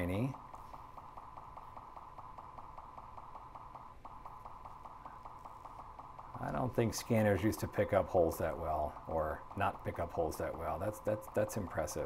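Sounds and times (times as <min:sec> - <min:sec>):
scanner high-pitched pulsing hum: 0:00.0 - 0:12.0.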